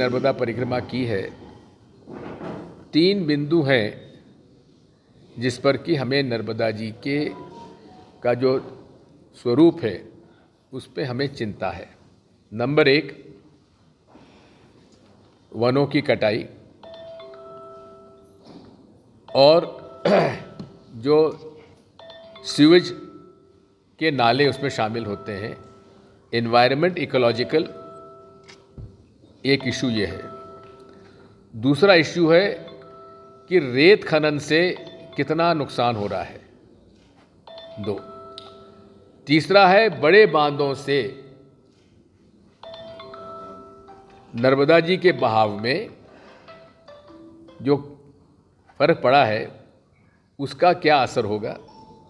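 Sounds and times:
mobile phone ringtone chimes: 16.8 - 18.5, 19.3 - 20.9, 22.0 - 26.2, 27.2 - 28.8, 29.6 - 35.8, 37.5 - 39.2, 42.5 - 47.6, 51.6 - 52.0
man clearing throat: 20.0 - 20.7.

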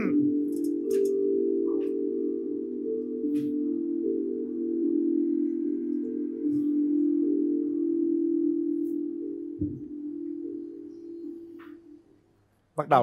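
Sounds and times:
chime-like chord: 0.0 - 12.0.

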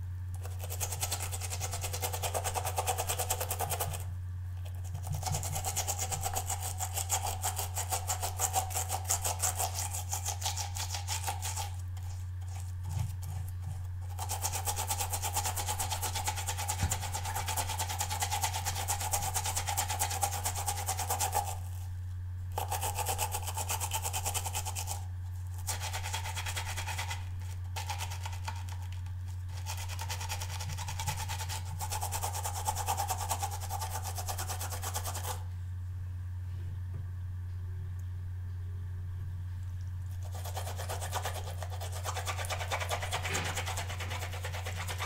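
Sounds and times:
steady low hum: 0.0 - 45.0
brush bristles scrubbing a pad: 4.9 - 21.8, 22.6 - 35.4, 40.2 - 45.0.

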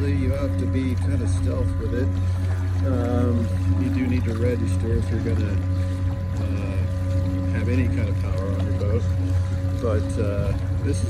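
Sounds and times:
electric motor humming and whining: 0.0 - 11.0.

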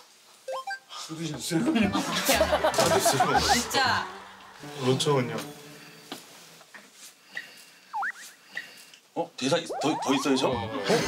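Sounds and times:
squeaky chirp sound effect: 8.0 - 8.4, 9.4 - 10.9.

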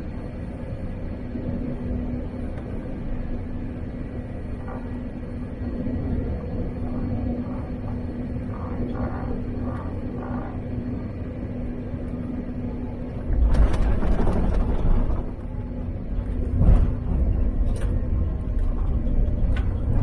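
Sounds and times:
airplane cabin rumble and engine hum: 0.0 - 20.0.

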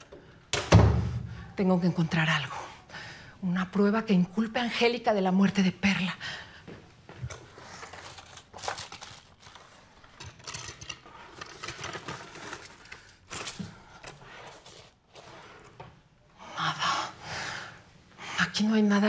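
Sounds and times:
papers and objects rustling: 7.1 - 16.0.

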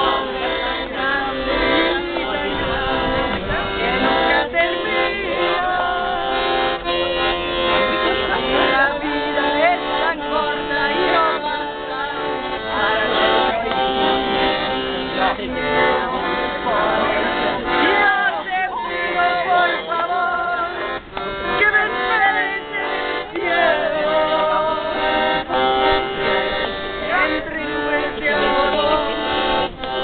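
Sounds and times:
piano accordion playing: 0.0 - 30.0
voices singing along: 0.0 - 30.0.

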